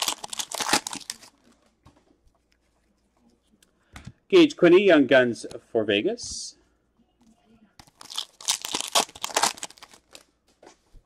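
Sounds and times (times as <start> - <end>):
wrapper tearing and crinkling: 0.0 - 1.4, 7.8 - 10.2.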